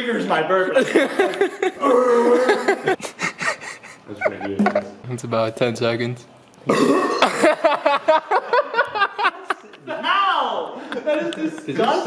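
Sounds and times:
man gulping water: 6.6s - 7.4s.

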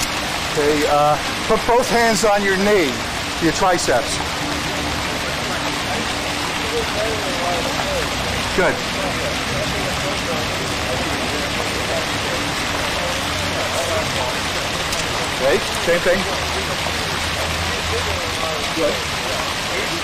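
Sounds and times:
fountain water splashing: 0.0s - 20.0s.

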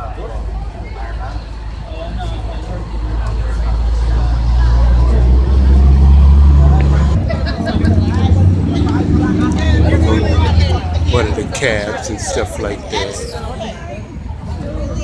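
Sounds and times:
people talking: 0.0s - 15.0s
vehicle engine rumbling: 0.0s - 15.0s.

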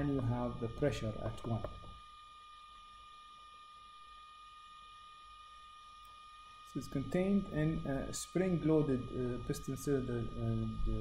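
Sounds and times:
high-pitched electrical whine: 0.0s - 11.0s.

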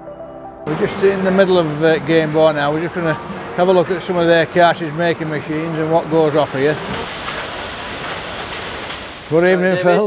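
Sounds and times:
factory machinery din: 0.7s - 9.5s.

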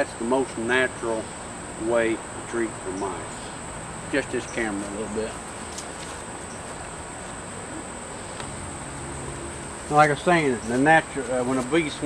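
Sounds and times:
crickets trilling: 0.0s - 12.0s.

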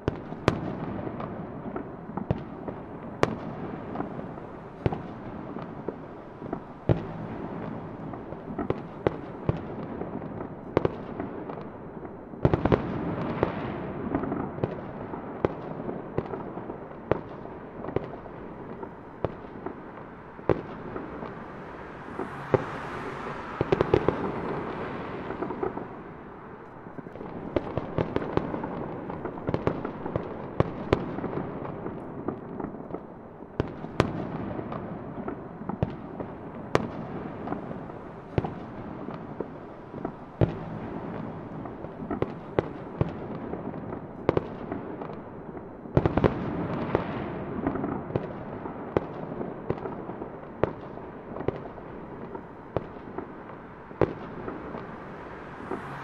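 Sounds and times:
fireworks popping and banging: 0.0s - 56.0s.

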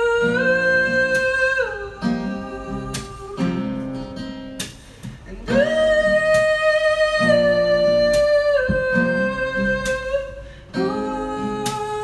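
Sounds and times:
strummed acoustic guitar: 0.0s - 12.0s.

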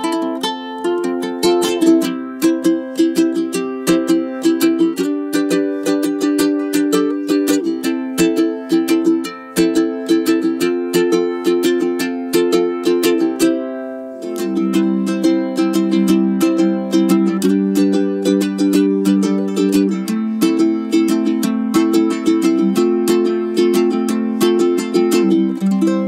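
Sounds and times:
ukulele strumming chords: 0.0s - 26.0s.

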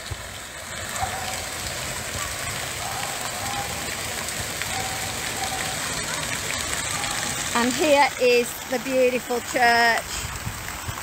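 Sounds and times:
fountain splashing: 0.0s - 11.0s.

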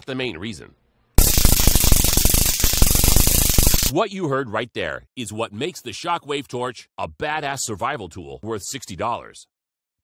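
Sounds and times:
stun gun electric crackle: 1.2s - 3.9s.

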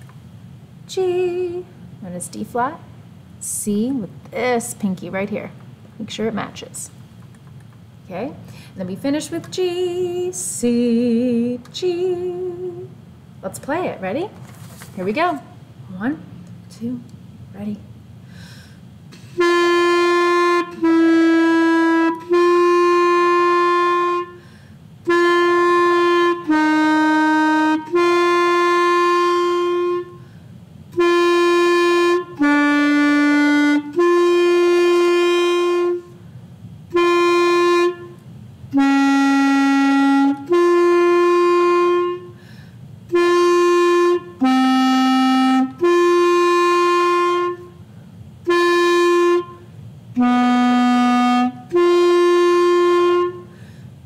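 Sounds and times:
player breathing: 18.2s - 18.9s, 42.4s - 42.9s, 53.5s - 54.0s
clarinet long tones: 19.2s - 30.3s, 30.9s - 36.2s, 36.9s - 42.4s, 43.1s - 47.8s, 48.4s - 53.6s.

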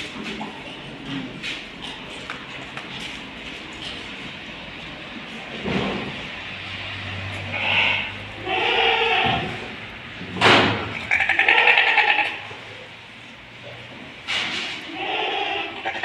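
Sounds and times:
sheep bleating: 7.4s - 9.6s, 11.1s - 12.5s, 14.9s - 16.0s.

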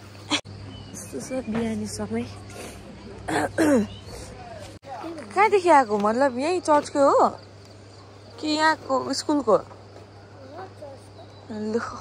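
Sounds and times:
woman clearing her throat: 3.3s - 3.9s.

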